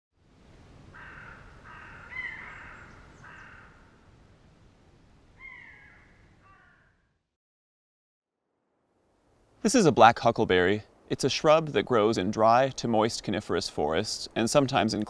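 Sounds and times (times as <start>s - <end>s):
low outdoor noise bed: 0.2s - 7.3s, 8.3s - 15.0s
bird calling harshly: 1.0s - 3.8s, 5.4s - 6.9s.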